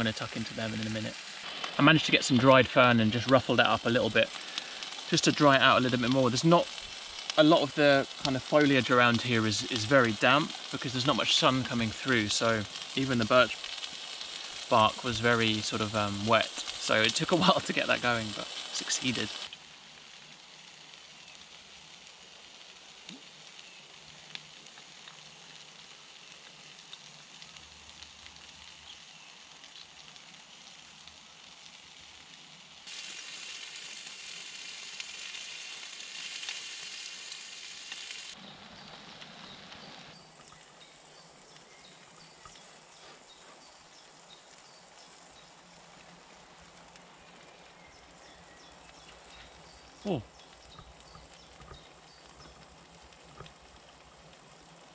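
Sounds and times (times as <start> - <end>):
meat sizzling in a pan: 0.0 - 54.9.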